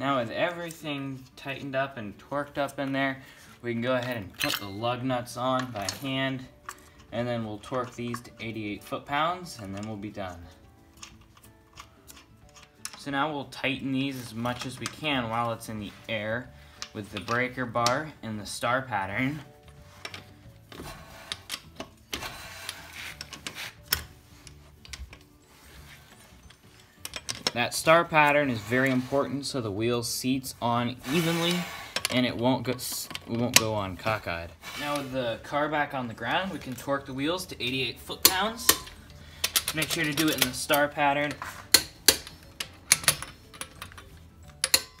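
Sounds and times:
metallic clicks of socket wrench: 38.2s - 40.8s.

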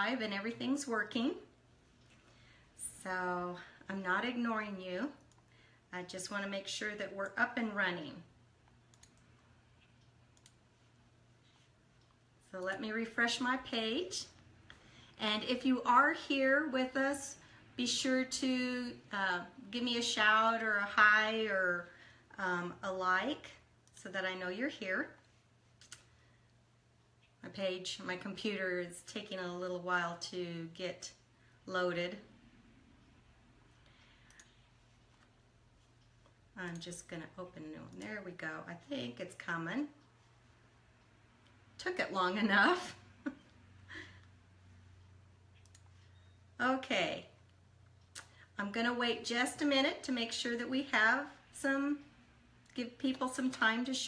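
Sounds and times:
faint low hum: 0.0s - 54.0s
computer clicks: 8.7s - 9.4s, 10.0s - 10.6s, 45.5s - 46.3s.

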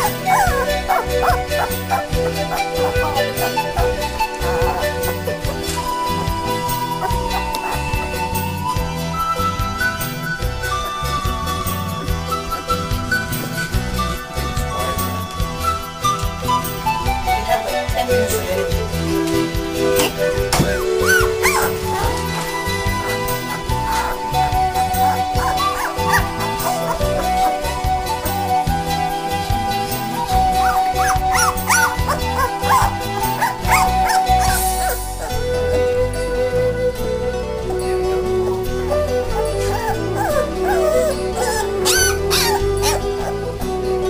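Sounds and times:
background music: 0.0s - 44.0s
puppies whimpering: 0.0s - 44.0s.

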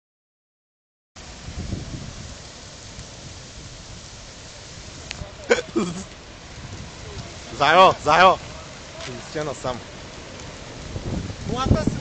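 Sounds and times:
wildfire burning: 1.2s - 12.0s.

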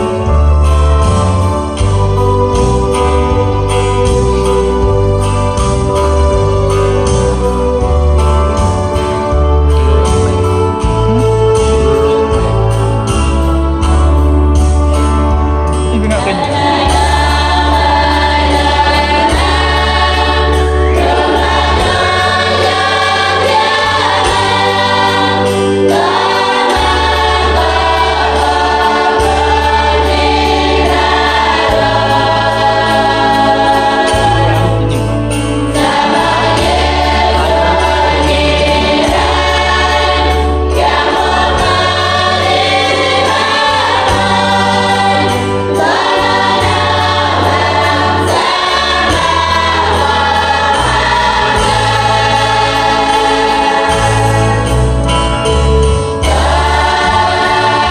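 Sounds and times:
women's choir singing a hymn: 0.0s - 10.9s, 16.3s - 57.9s
low bass accompaniment: 0.0s - 57.9s.

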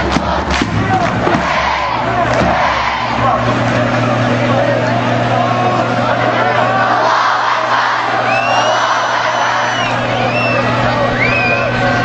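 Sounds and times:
crowd chanting in unison: 0.0s - 10.1s.

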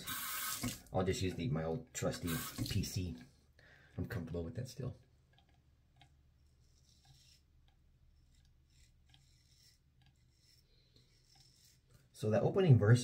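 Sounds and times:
razor scraping stubble: 5.4s - 12.2s.

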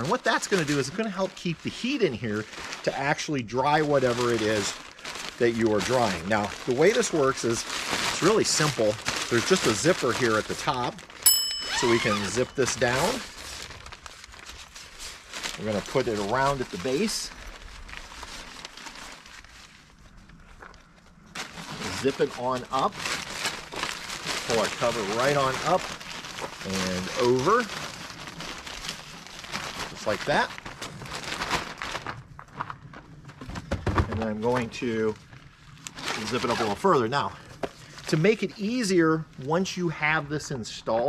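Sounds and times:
fabric cover rustling: 0.0s - 33.4s, 34.2s - 37.0s
zipper being unzipped: 11.6s - 12.6s, 36.0s - 36.8s.

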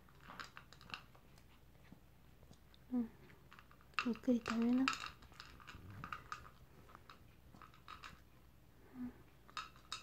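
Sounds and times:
dog crunching food: 0.0s - 1.6s, 3.5s - 8.4s.

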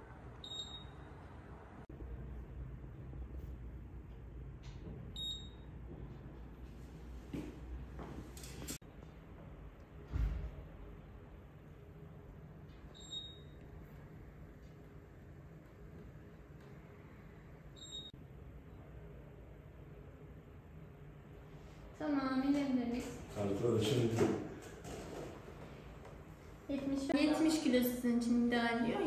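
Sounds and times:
low room hum: 0.0s - 29.0s
short electronic beep: 0.4s - 1.1s.

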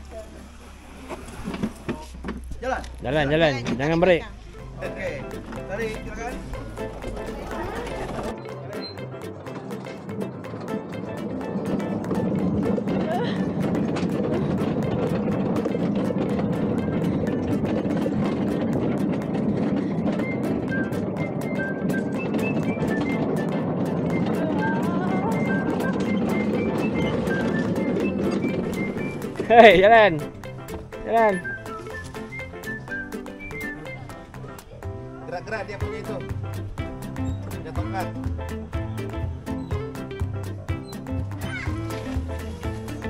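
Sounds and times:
ride cart rumbling and rattling: 0.0s - 43.0s.

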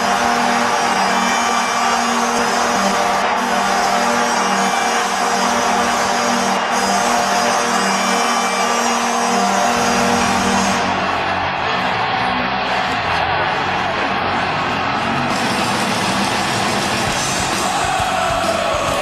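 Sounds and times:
goal horn sounding: 0.0s - 11.6s
arena crowd cheering: 0.0s - 19.0s.

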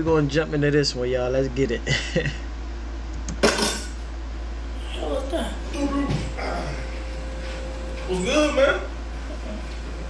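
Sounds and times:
low steady hum: 0.0s - 10.0s
object clattering on dishes: 3.4s - 4.0s.

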